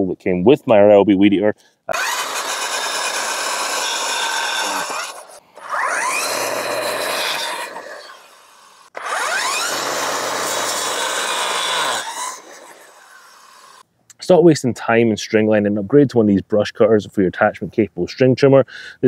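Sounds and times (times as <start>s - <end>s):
string trimmer with blade cutting: 1.9s - 13.8s.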